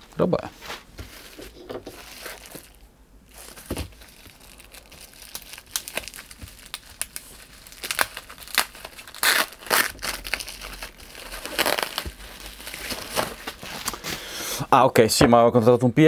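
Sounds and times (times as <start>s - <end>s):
plastic rustling: 0.6s - 14.3s
bubble wrap crinkling: 0.9s - 14.3s.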